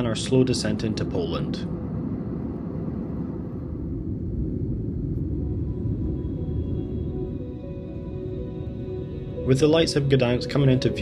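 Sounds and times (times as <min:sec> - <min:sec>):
airliner cabin rumble: 0:00.0 - 0:11.0.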